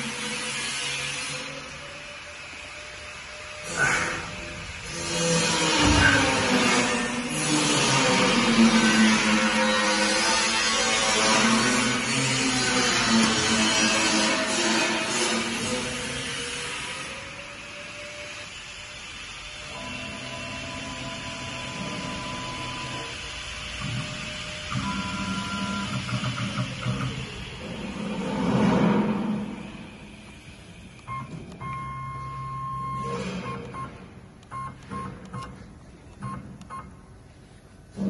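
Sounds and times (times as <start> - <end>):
lathe drive motors whining: 0.0 - 28.4.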